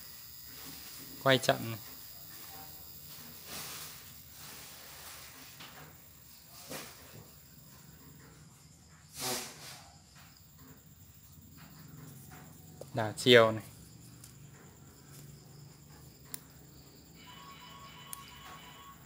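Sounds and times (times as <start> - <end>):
electric motor humming: 0.0 - 6.3
short breathy hiss: 3.1 - 5.4, 9.1 - 9.9.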